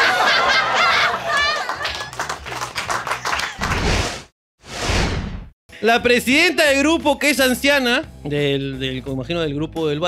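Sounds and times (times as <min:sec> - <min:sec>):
laughter: 0:00.0 - 0:02.2
whoosh sound effects: 0:03.7 - 0:05.5.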